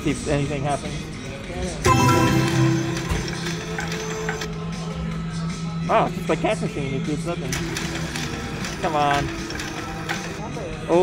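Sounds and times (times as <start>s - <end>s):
slot machine reels clicking: 1.9s - 4.5s.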